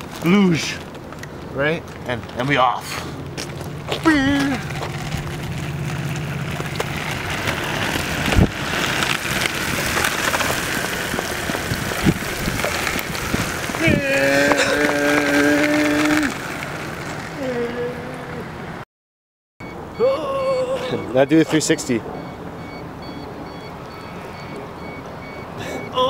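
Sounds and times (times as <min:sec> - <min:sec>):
wheels rolling on wet asphalt: 0:00.0 - 0:18.8
low hum: 0:03.1 - 0:09.8
long held shout: 0:13.8 - 0:16.4.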